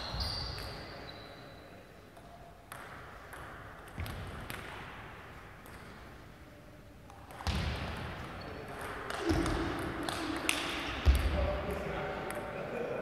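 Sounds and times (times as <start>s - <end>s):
table tennis ball bouncing: 2.2s - 4.8s, 7.1s - 11.3s.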